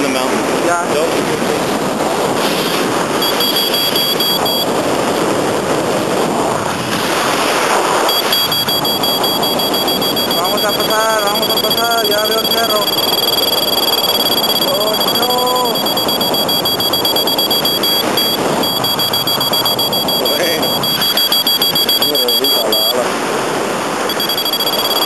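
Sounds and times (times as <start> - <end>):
wind rushing across microphone: 0.0 - 24.6
high steady variometer beep: 3.2 - 4.9, 8.0 - 23.1, 24.0 - 25.0.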